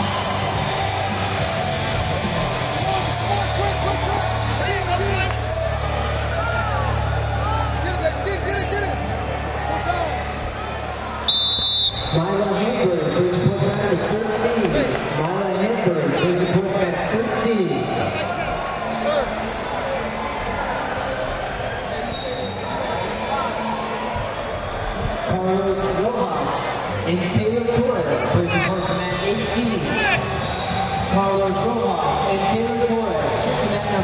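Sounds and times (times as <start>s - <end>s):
background music: 0.0s - 34.0s
crowd hubbub: 0.0s - 34.0s
referee whistle blast: 11.3s - 12.3s, 22.1s - 22.8s, 30.4s - 31.0s.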